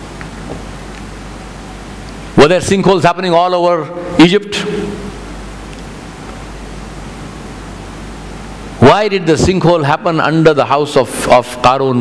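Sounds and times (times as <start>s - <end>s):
steady hiss: 0.0s - 12.0s
man's voice: 2.4s - 5.1s, 8.8s - 12.0s.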